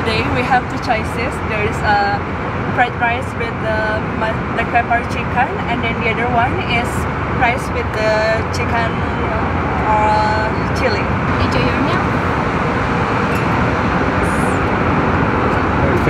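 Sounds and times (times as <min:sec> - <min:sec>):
airliner cabin noise: 0:00.0 - 0:16.0.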